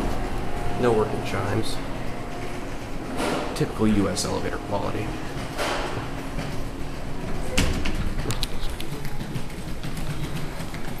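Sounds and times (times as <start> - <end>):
footsteps on tiled floor: 5.2 - 11.0.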